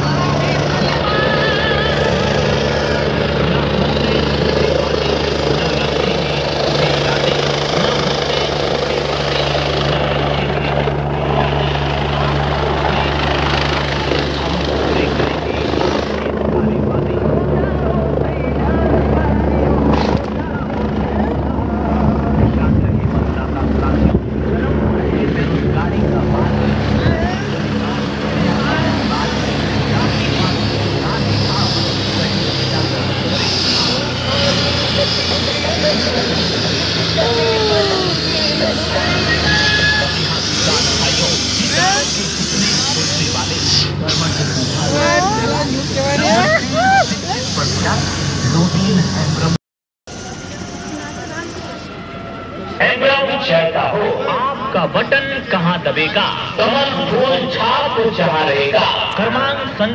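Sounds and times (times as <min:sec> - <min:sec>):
crowd voices: 0:00.0 - 0:59.9
helicopter rotor and turbine: 0:00.0 - 0:59.9.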